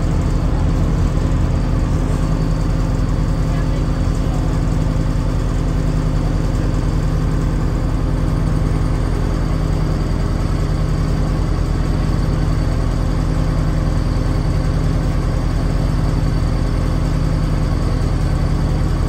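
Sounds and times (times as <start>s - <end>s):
pulsing mechanical hum: 0.0s - 19.0s.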